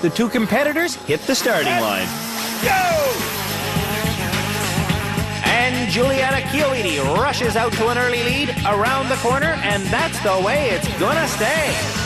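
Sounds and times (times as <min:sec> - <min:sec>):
go-kart engines running hard: 0:00.0 - 0:08.6
background music: 0:00.0 - 0:12.0.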